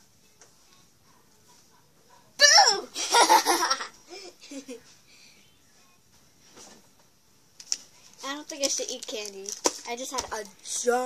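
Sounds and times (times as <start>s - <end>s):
girl laughing loudly: 2.6s - 4.8s.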